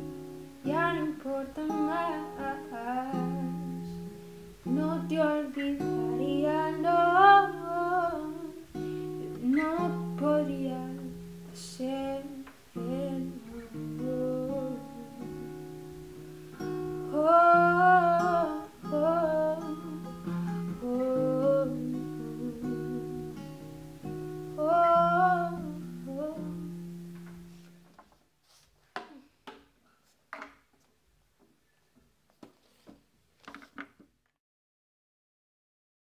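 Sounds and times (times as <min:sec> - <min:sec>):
acoustic guitar chord: 0:00.0 - 0:27.7
woman singing wordless note: 0:00.6 - 0:04.1, 0:09.4 - 0:15.5, 0:20.8 - 0:23.4, 0:24.6 - 0:26.7
woman humming: 0:12.0 - 0:15.6, 0:17.2 - 0:23.4.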